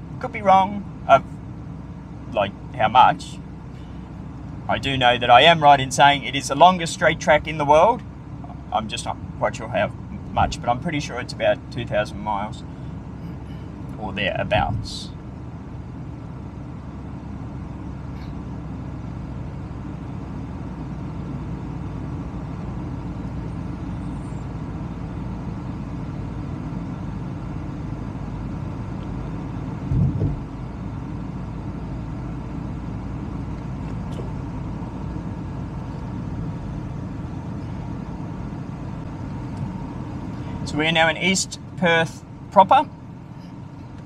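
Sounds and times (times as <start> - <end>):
car driving on road: 0.0 - 44.0
low thump: 29.9 - 30.4.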